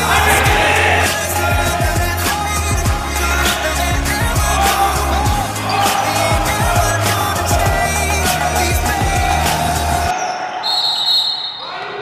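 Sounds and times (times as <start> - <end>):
players' voices: 0.0 - 10.3.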